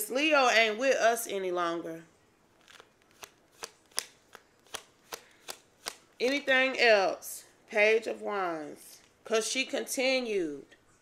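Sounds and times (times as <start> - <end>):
cards being shuffled: 2.6 - 6.4.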